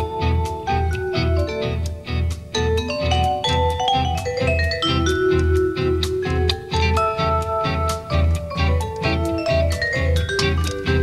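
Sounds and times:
vibraphone struck with mallets: 0.0 - 11.0.

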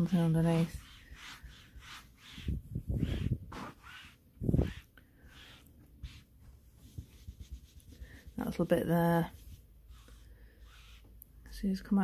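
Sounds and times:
hand rubbing velvet: 0.0 - 11.2.

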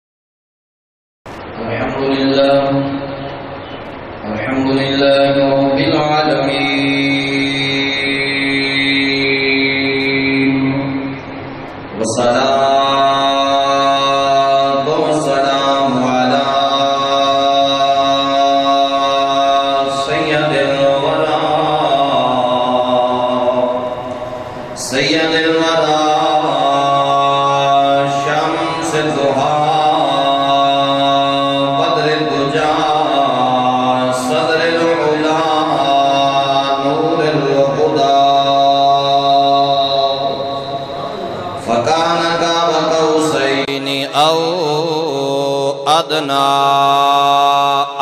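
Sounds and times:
man chanting a held note: 1.5 - 3.2, 4.2 - 11.3, 12.0 - 48.0.

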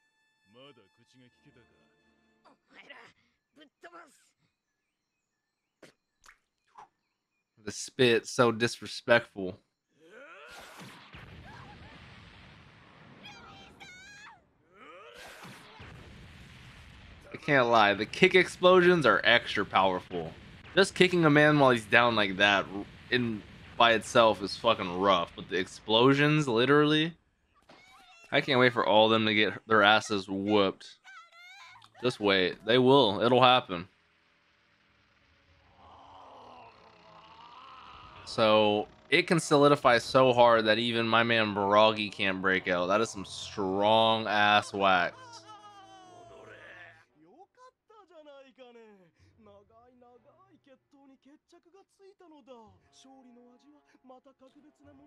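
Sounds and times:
wavering pitched straining cry: 35.7 - 38.3, 45.1 - 47.0
cartoon sound effects: 42.2 - 47.0
person shouting high: 45.1 - 47.0.

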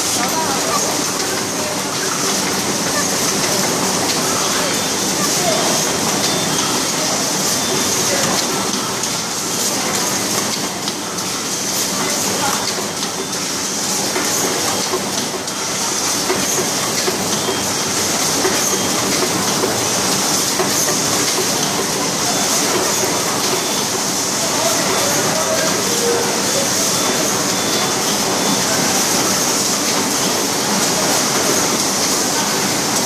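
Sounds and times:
machine clattering: 0.1 - 33.0.

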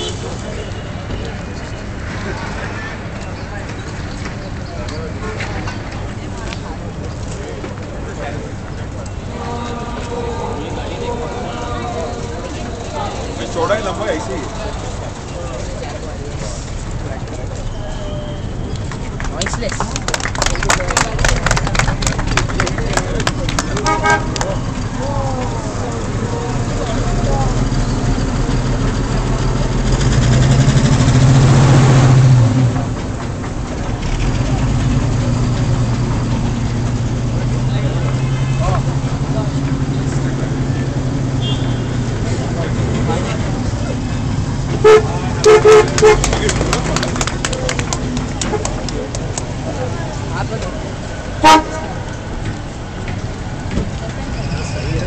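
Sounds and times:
car horn toots: 0.0 - 1.0, 23.8 - 24.6, 41.4 - 42.0, 44.7 - 46.5, 51.4 - 52.0
vintage car engines running: 0.0 - 55.0
car passing close: 20.0 - 55.0.

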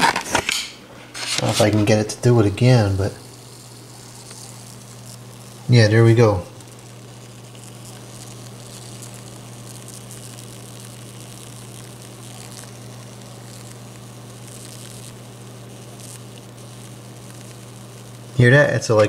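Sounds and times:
watermelon fizzing and crackling: 1.4 - 18.5.

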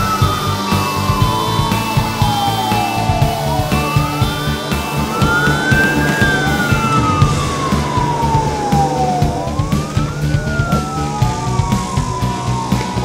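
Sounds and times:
background music with steady beat: 0.0 - 13.0
fire truck sirens wailing: 0.0 - 13.0.

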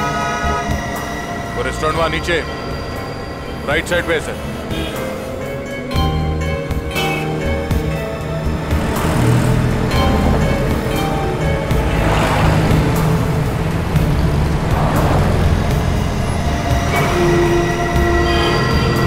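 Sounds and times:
dramatic score with low drone: 0.0 - 19.0
heavy street traffic: 0.0 - 19.0.

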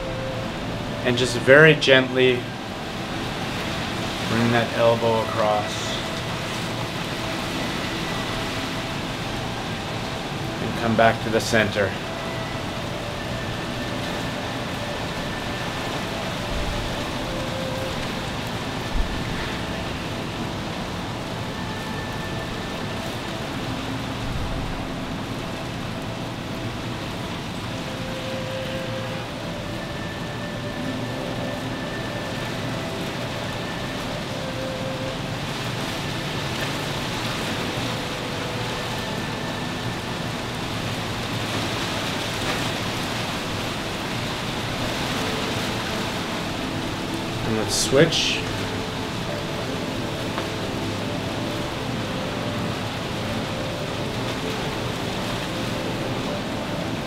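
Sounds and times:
steady rushing noise: 0.0 - 57.0.

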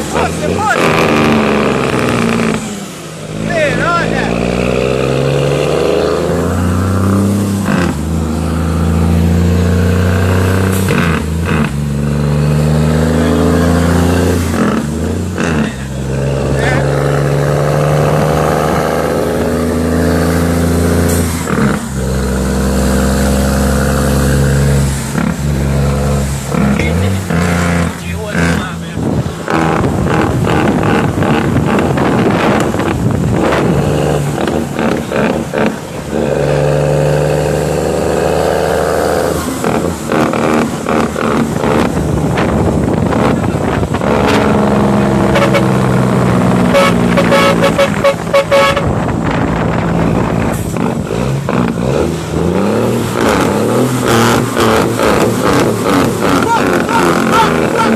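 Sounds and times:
loud diesel truck engine: 0.0 - 57.9.

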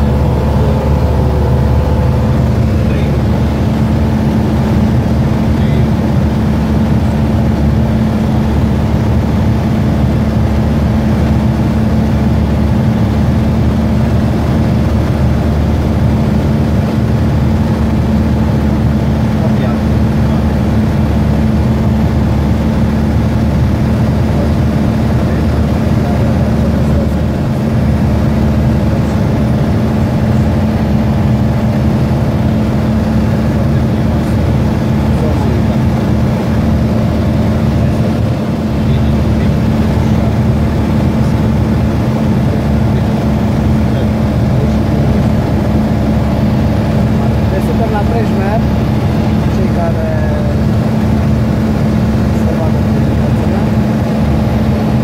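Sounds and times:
aircraft cabin engine drone: 0.0 - 55.0.

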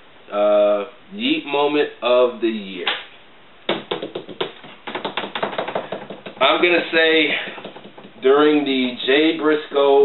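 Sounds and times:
hands tapping on tabletop: 3.7 - 8.3.

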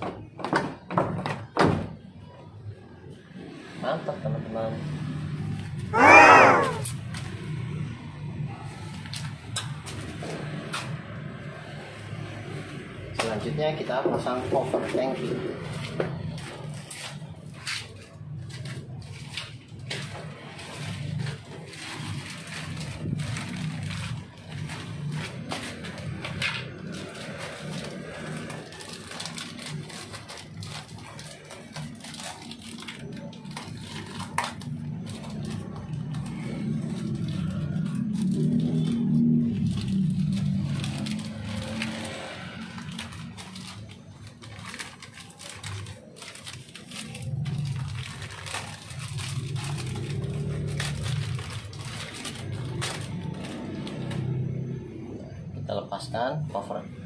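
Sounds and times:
plastic packaging crinkling: 26.8 - 38.9, 39.6 - 54.4.

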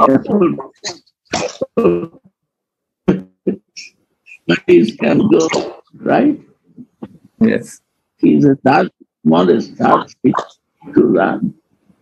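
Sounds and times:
man speaking over video call: 0.0 - 2.2, 3.1 - 11.6
short vocal bursts: 0.0 - 2.2, 3.1 - 7.8.

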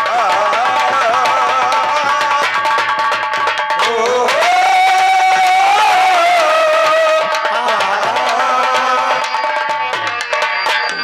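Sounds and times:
person singing long high note: 0.0 - 2.5, 3.8 - 10.5
light musical accompaniment: 5.3 - 11.0.

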